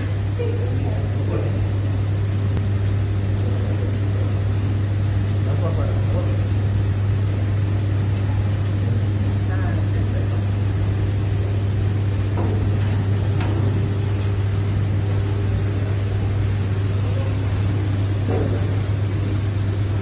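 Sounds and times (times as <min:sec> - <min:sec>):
extraction fan running: 0:00.0 - 0:20.0.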